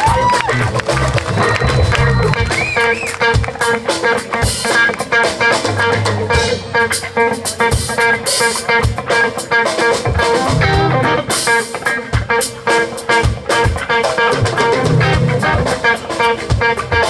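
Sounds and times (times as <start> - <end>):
blues band playing: 0.0 - 17.0
electric guitar solo: 0.0 - 17.0.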